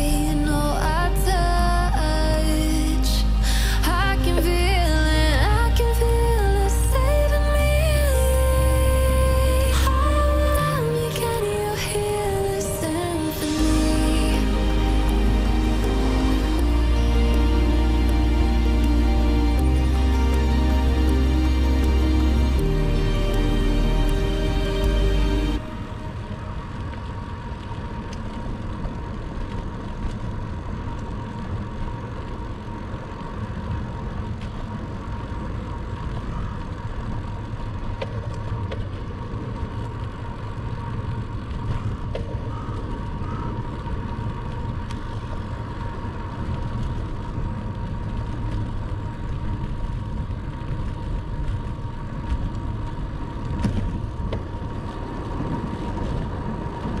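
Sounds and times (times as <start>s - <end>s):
tyre noise on asphalt: 25.6s - 57.0s
wind rushing over microphone: 25.6s - 57.0s.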